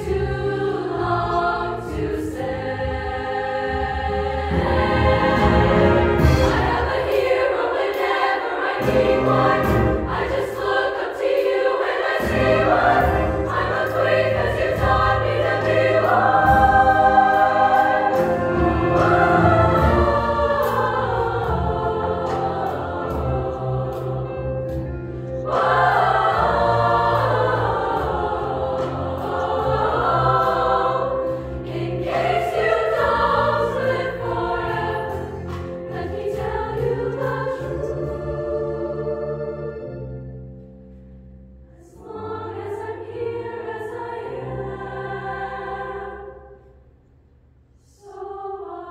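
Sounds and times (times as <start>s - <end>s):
women's choir singing: 0.0s - 40.5s, 41.7s - 46.8s, 47.9s - 48.9s.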